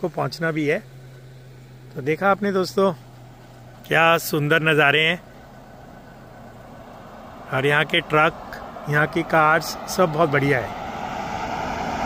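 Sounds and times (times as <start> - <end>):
faint highway traffic hum: 0.0 - 12.0.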